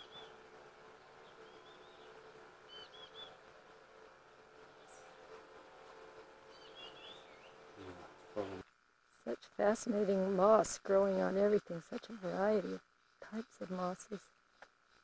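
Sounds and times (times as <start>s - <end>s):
songbird chirps: 0.0s - 3.8s, 4.6s - 5.6s, 6.4s - 9.7s
faint hum: 0.0s - 15.0s.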